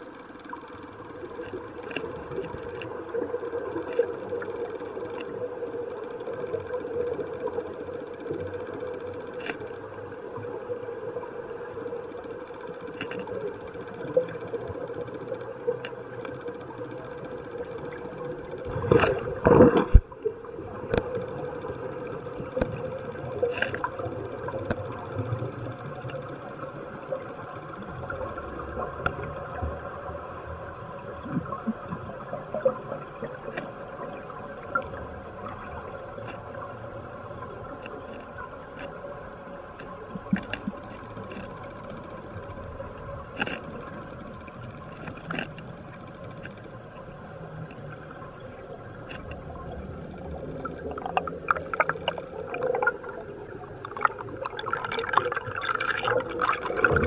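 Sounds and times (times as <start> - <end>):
underwater hum: 0.0 - 57.0
gurgling air bubbles: 50.2 - 57.0.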